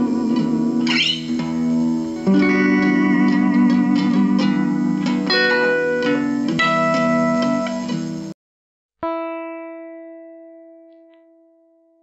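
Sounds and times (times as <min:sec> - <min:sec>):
electric guitar note ringing: 0:00.0 - 0:08.0.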